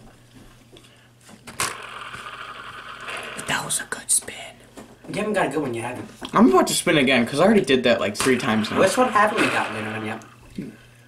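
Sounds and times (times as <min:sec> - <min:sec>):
plastic spinner whirring: 0:01.5 - 0:03.5, 0:08.2 - 0:10.3.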